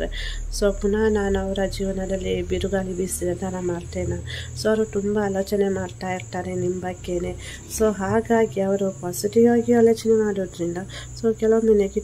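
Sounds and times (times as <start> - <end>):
high-pitched whine: 0.0 - 12.0
low steady drone: 0.0 - 12.0.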